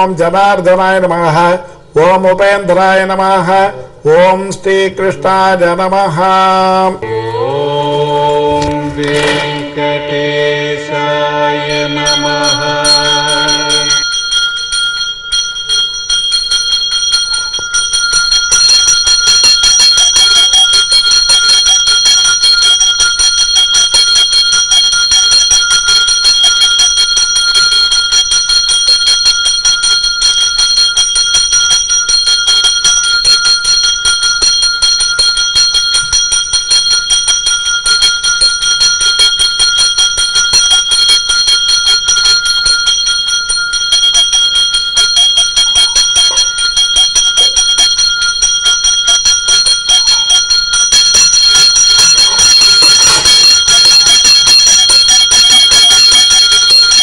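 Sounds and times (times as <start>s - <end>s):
temple bell rung rapidly: 11.6s - 57.0s.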